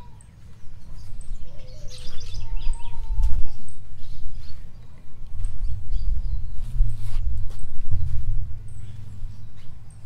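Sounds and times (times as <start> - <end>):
uneven low rumble: 0.8 - 9.9.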